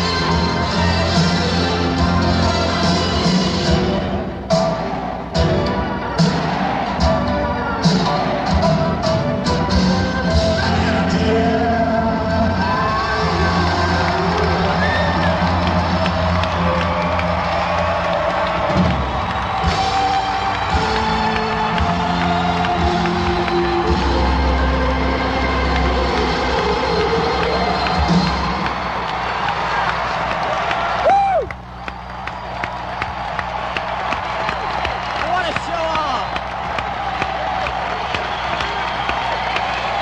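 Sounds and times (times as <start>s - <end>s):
crowd cheering: 0.0s - 40.0s
crowd whistling: 12.1s - 40.0s
crowd clapping: 12.8s - 40.0s.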